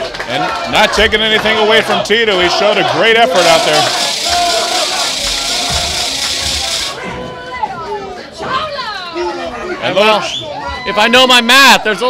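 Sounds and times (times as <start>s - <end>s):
crowd noise and voices: 0.0s - 12.0s.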